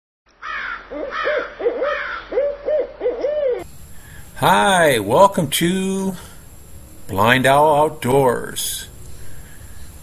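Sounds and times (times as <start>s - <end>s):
owl hooting: 0.4s - 3.7s.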